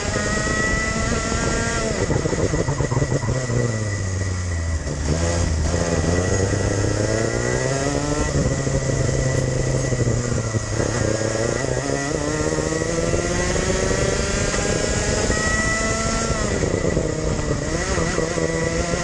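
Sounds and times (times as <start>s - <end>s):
race kart engine: 0.0s - 19.0s.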